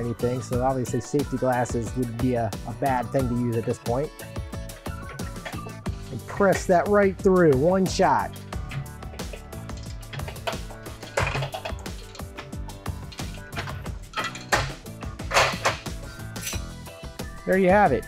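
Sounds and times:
background music: 0.0 - 18.0.

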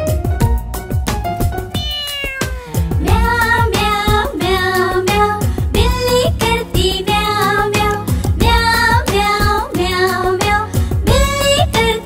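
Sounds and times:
cartoon music with drum beat: 0.0 - 12.0
cartoon kitten meowing: 1.7 - 2.8.

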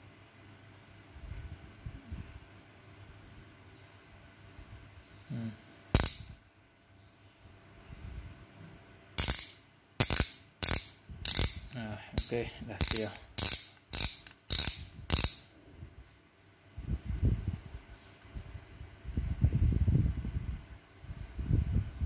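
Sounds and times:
ratchet wrench clicking: 6.0 - 6.4, 9.2 - 15.5.

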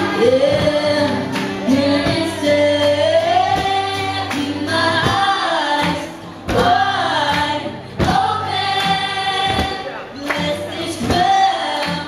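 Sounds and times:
music with steady beat: 0.0 - 8.5
woman singing into microphone: 0.0 - 12.0.

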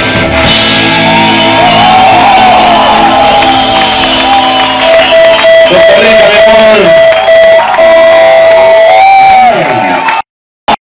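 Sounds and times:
rock band long high note: 0.0 - 10.0
crowd cheering and shouting: 0.0 - 10.3.

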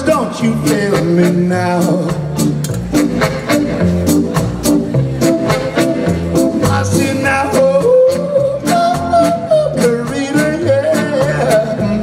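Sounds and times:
man singing wordless melody: 0.0 - 2.5, 6.5 - 12.0
soul band playing: 0.0 - 12.0.

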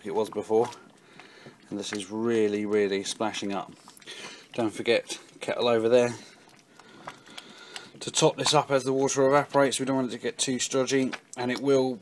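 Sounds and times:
person speaking: 0.0 - 0.8, 1.6 - 6.4, 8.0 - 12.0
mash bubbling in a pan: 0.0 - 12.0.

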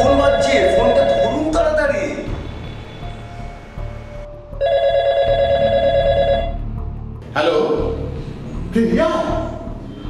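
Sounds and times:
phone ringtone warbling: 0.0 - 1.7, 4.6 - 6.6.

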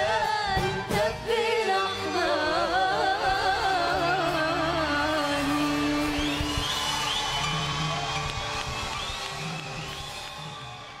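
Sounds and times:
audience cheering and whooping: 5.5 - 11.0.

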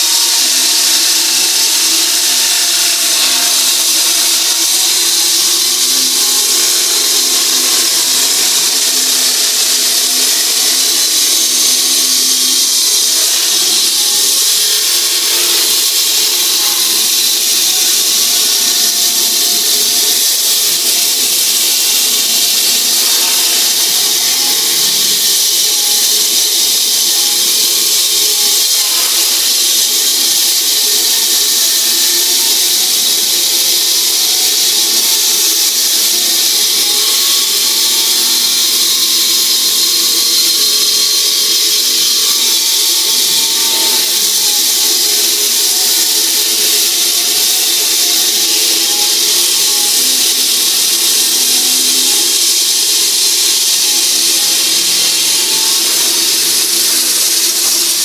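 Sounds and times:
saw grinding into concrete: 0.0 - 58.0.

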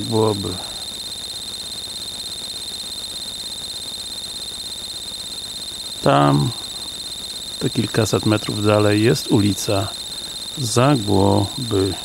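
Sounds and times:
pulsing high-pitched whine: 0.0 - 12.0.

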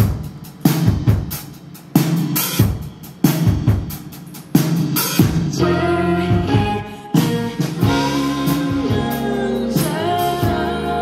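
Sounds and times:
drum kit hits: 0.0 - 11.0
live band playing: 4.7 - 11.0.

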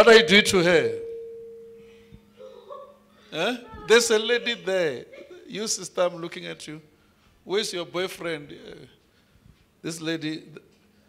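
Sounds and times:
steady ringing tone: 0.0 - 4.4.

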